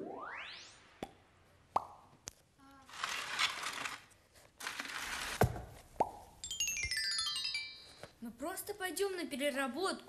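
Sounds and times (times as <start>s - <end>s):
rising bloop plop: 0.0s - 1.2s
descending tinkling chimes: 6.4s - 8.1s.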